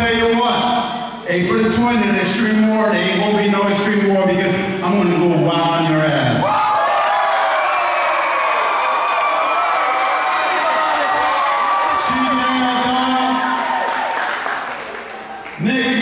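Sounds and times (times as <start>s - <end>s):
crowd cheering and shouting: 6.4s - 16.0s.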